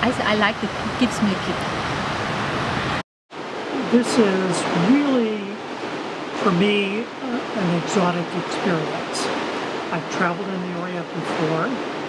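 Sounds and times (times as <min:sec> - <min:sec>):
ocean waves breaking: 0:00.0 - 0:03.8, 0:05.6 - 0:06.6, 0:08.4 - 0:10.0
steady background hiss: 0:00.0 - 0:12.0
man talking: 0:03.7 - 0:05.6, 0:06.4 - 0:11.8.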